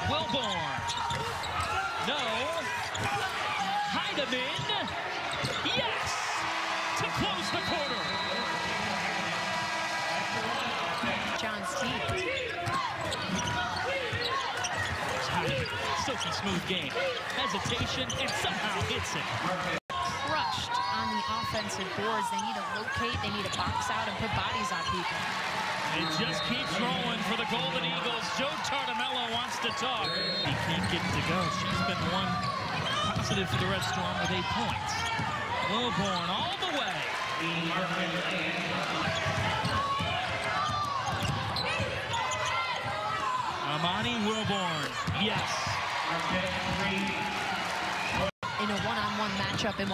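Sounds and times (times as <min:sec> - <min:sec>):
sneakers squeaking on floor: 0:00.0 - 0:03.4, 0:04.3 - 0:06.0, 0:10.5 - 0:18.6, 0:21.6 - 0:25.2, 0:29.6 - 0:36.6, 0:38.5 - 0:43.4
voices in background: 0:00.0 - 0:47.4.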